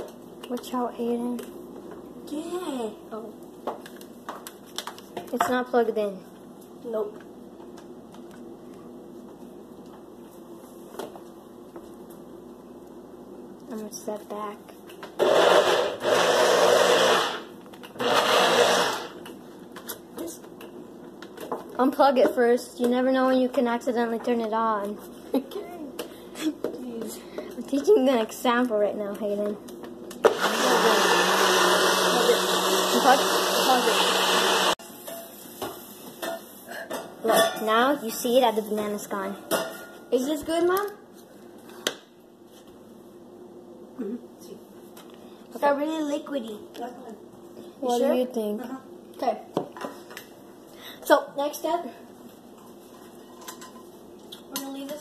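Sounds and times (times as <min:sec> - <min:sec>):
blender pulsing: 0:15.2 - 0:19.2, 0:30.2 - 0:34.8.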